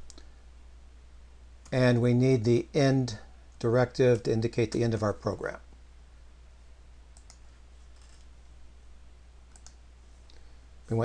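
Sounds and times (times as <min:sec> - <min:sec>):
low steady hum: 0:00.0 - 0:11.0
keyboard and mouse clicks: 0:07.2 - 0:08.2, 0:09.5 - 0:09.8.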